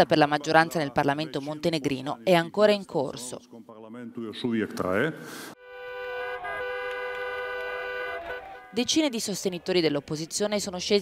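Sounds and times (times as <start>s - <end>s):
car horn long blast: 5.6s - 8.8s.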